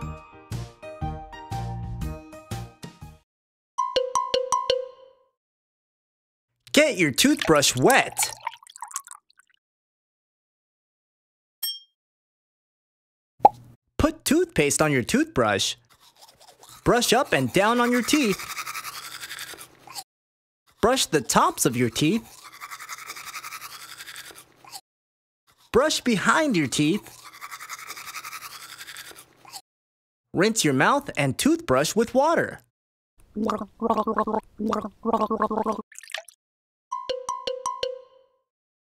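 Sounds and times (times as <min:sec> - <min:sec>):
water splash: 0:07.2 - 0:09.2
toothbrush scrubbing teeth: 0:15.8 - 0:20.0, 0:21.2 - 0:24.8, 0:25.5 - 0:26.0, 0:26.6 - 0:29.6
cartoon gargling: 0:17.6 - 0:20.0, 0:33.3 - 0:35.8.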